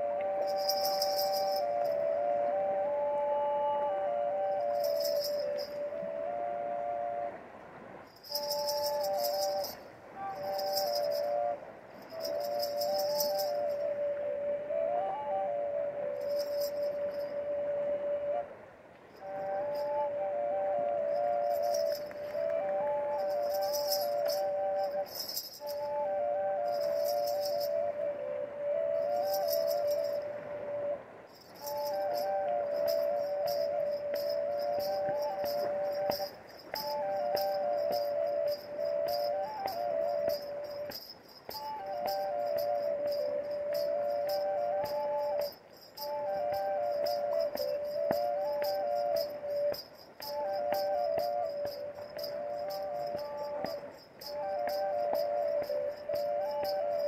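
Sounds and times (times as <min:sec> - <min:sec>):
double flute melody over drone: 0:00.0 - 0:57.0
ankle bells and rattle shaking: 0:00.4 - 0:02.1, 0:04.5 - 0:05.8, 0:08.1 - 0:13.9, 0:16.2 - 0:17.4, 0:19.1 - 0:20.0, 0:21.0 - 0:27.9, 0:28.9 - 0:30.2, 0:31.3 - 0:57.0.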